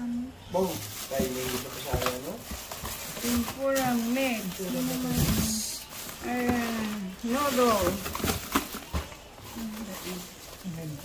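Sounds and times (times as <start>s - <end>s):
paper and plastic bags rustling: 0.5s - 11.0s.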